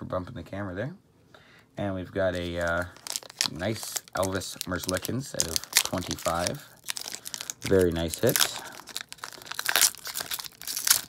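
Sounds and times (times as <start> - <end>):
foil wrapper tearing and crinkling: 2.3 - 11.0.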